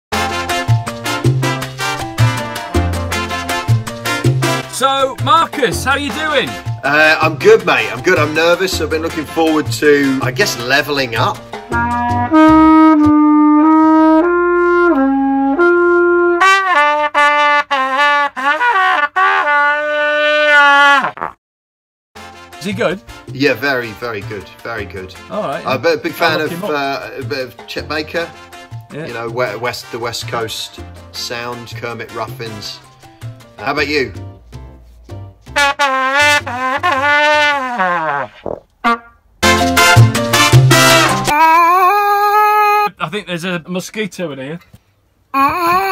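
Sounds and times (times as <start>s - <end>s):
solo trumpet: 0.1s - 4.7s, 11.7s - 21.3s, 35.5s - 41.8s
backing music with a beat: 0.1s - 15.0s, 22.2s - 36.9s, 39.4s - 41.3s.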